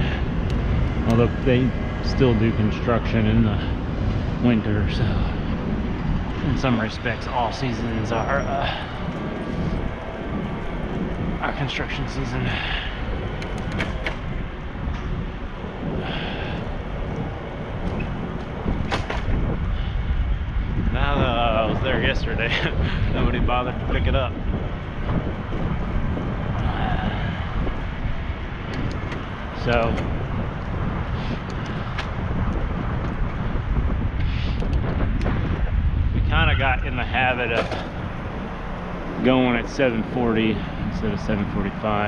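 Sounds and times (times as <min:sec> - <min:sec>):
road noise: 0:00.0 - 0:42.0
wind rushing over microphone: 0:00.0 - 0:42.0.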